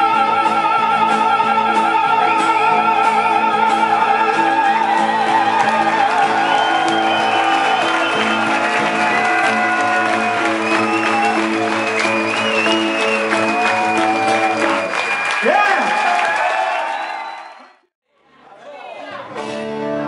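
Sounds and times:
acoustic guitar: 0.0 - 14.8
voices singing long notes: 0.0 - 15.1
audience clapping and cheering: 4.2 - 17.9.

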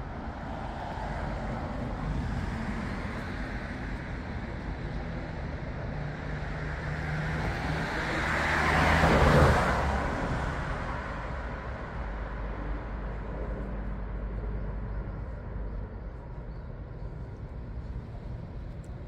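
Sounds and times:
vehicle passing by: 6.9 - 11.3
low engine rumble: 9.8 - 19.0.

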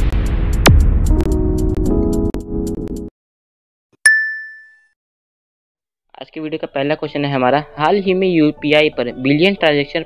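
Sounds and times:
bright ding: 4.1 - 4.9.

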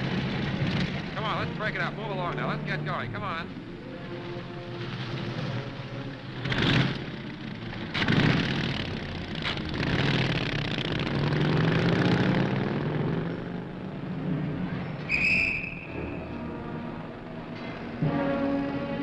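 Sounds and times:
car engine accelerating: 0.0 - 19.0
street traffic: 0.0 - 19.0.

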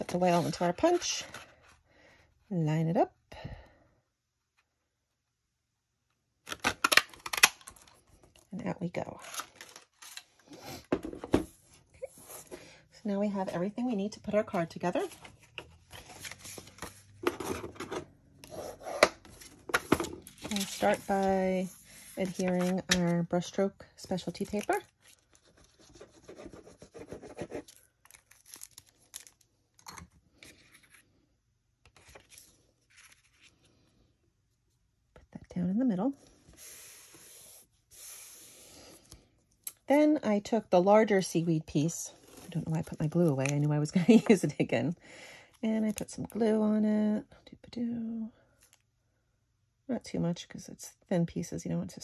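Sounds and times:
paper rustling: 15.1 - 17.7, 19.2 - 23.1, 31.9 - 33.7
hand rubbing paper: 36.5 - 38.7.

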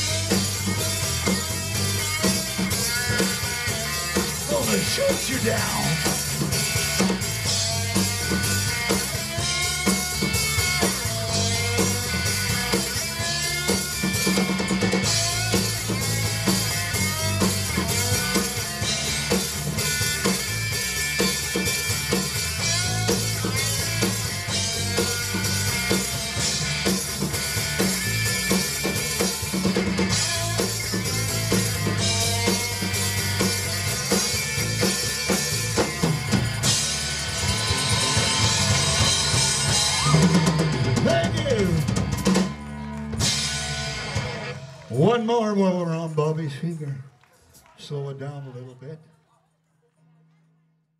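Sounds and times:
electric guitar: 0.0 - 44.9
drum kit: 0.0 - 45.1
bass guitar: 0.0 - 46.0.

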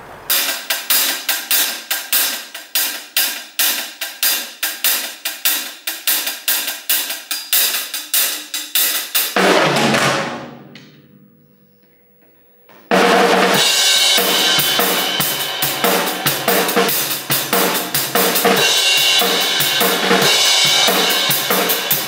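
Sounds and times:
cymbal crash: 0.2 - 3.0, 9.4 - 11.5, 13.0 - 22.0
drum kit steady beat: 0.3 - 11.1, 12.9 - 22.0
cymbals ringing: 7.4 - 22.0.

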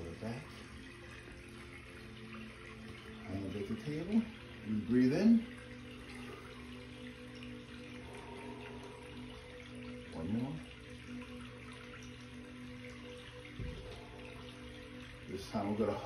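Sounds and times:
low hum: 0.0 - 16.0.

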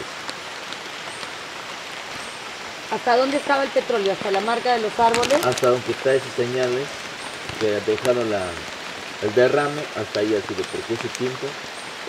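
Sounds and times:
rain falling steadily: 0.0 - 12.0.

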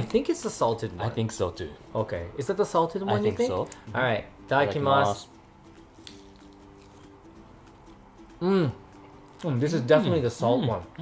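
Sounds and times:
faint steady background tones: 0.0 - 11.0
people chewing: 5.9 - 7.3.

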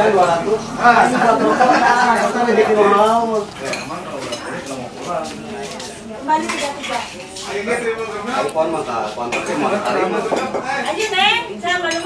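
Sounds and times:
plates and cutlery clinking: 1.0 - 11.0, 11.7 - 12.0.

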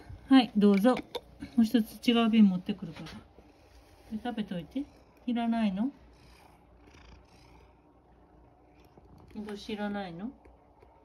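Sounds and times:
cat purring: 2.7 - 11.0.

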